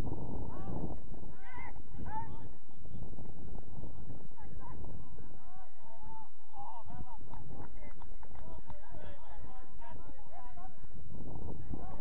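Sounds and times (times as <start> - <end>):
wind rumble on microphone: 0.0 - 12.0
distant shouts: 1.3 - 2.9.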